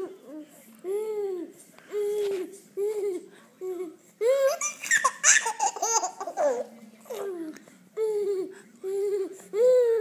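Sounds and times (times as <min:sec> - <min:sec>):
baby laughing and squealing: 0:04.4 - 0:06.6.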